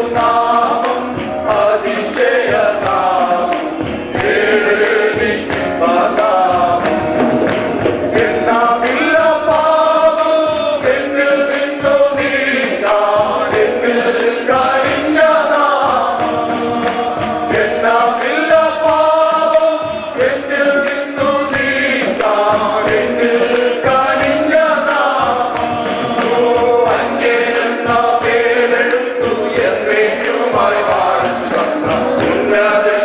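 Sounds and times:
hand drums beating: 0.0s - 33.0s
men singing worship song: 0.0s - 33.0s.

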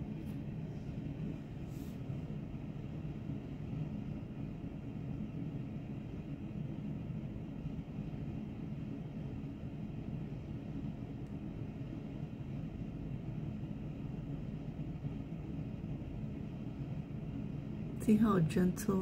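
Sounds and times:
low rumbling background noise: 0.0s - 19.0s.

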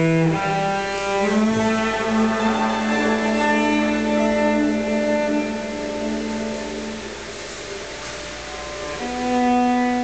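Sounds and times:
bowed cello note: 0.0s - 7.5s, 8.5s - 10.0s
room noise hiss: 0.0s - 10.0s.

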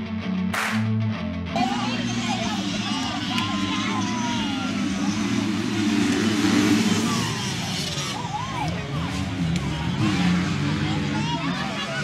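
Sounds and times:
motocross bike engines revving: 1.6s - 12.0s.

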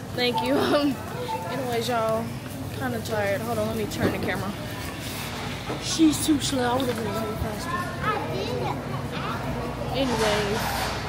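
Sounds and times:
voices talking: 0.0s - 10.8s
busy store background: 0.0s - 11.0s.

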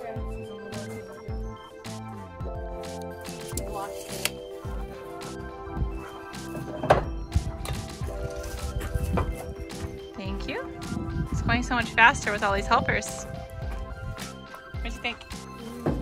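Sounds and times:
music with a beat: 0.0s - 16.0s.

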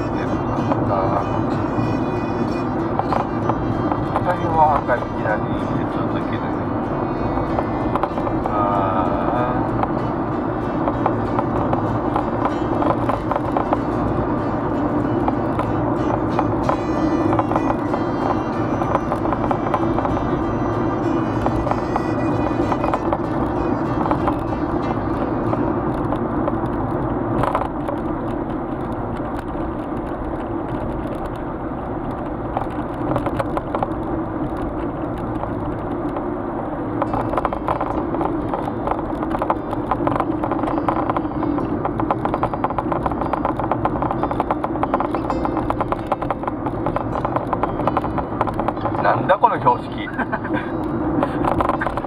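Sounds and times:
car engine and tyre drone: 0.0s - 52.0s.

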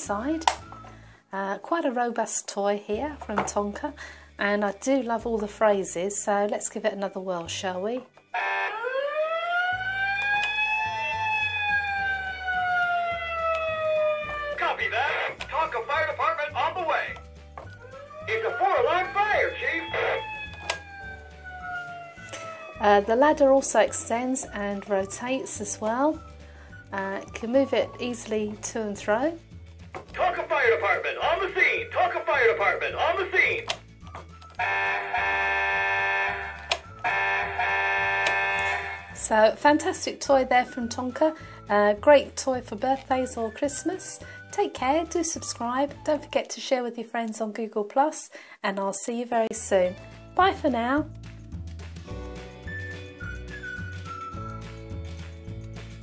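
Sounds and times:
toy siren wail: 8.4s - 14.8s, 17.8s - 23.1s, 34.6s - 39.2s.

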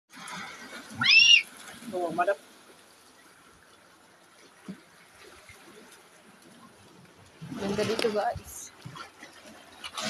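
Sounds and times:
child squealing: 1.0s - 1.5s.

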